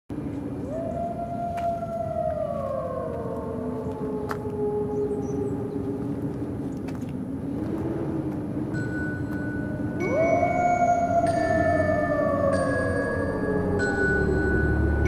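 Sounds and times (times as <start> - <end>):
low drone: 0.1 - 15.0
sustained tone gliding downward: 7.5 - 15.0.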